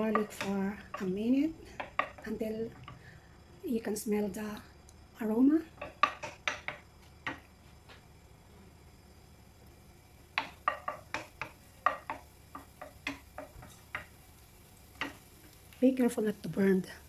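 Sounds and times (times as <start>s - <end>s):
spatula knocking and scraping pan: 0.0s - 3.1s, 5.7s - 7.5s, 10.3s - 14.2s.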